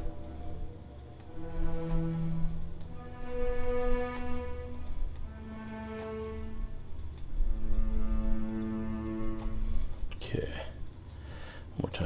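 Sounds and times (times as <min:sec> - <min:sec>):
bowed string notes: 0:00.0 - 0:10.5
low steady rumble: 0:00.0 - 0:11.6
faint clicks: 0:05.1 - 0:05.3.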